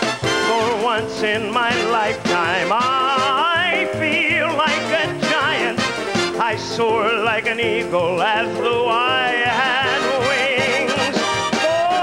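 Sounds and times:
man singing with vibrato: 0.0s - 12.0s.

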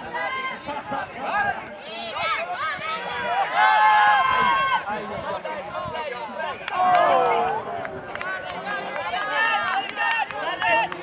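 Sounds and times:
people shouting across a field: 0.0s - 11.0s.

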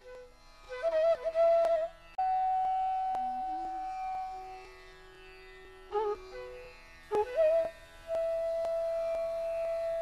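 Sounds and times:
flute holding long note: 0.0s - 4.7s, 5.9s - 10.0s.

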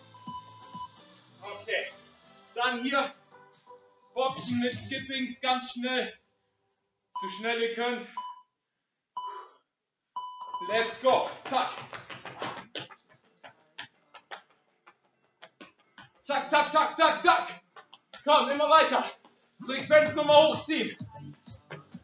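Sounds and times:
man's voice: 4.2s - 6.1s, 10.7s - 11.8s, 16.2s - 17.6s, 18.2s - 21.1s
workout timer beeps: 8.2s - 8.5s, 9.2s - 9.5s, 10.2s - 11.0s.

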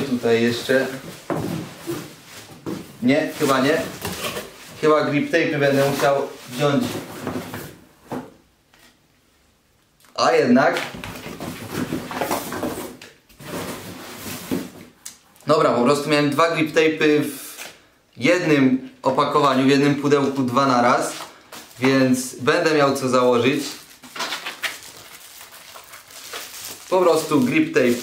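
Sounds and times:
cardboard box rustling and scraping: 11.4s - 14.8s
plastic wrapping crinkling: 22.9s - 28.0s.

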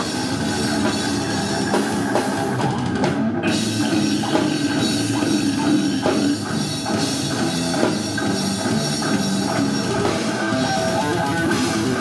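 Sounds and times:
distorted electric guitar: 0.0s - 12.0s
drum kit: 0.0s - 12.0s.

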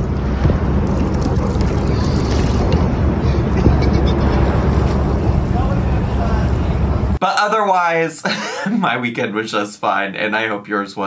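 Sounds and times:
water noise: 0.0s - 7.2s
wind on microphone: 0.0s - 7.2s.

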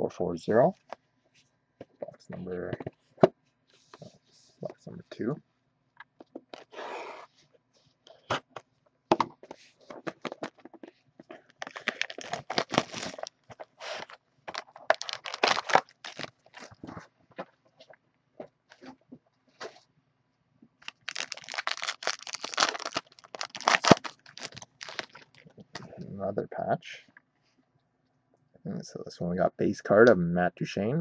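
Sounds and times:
plastic wrap crinkling and tearing: 11.4s - 16.9s, 20.8s - 25.8s.

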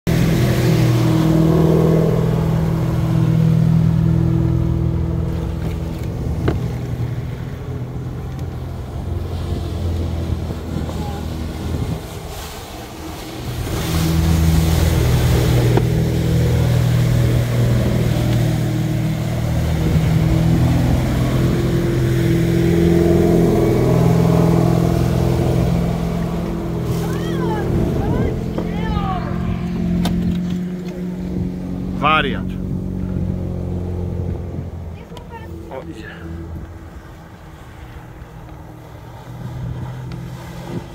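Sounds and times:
boat engine humming: 0.0s - 40.9s.

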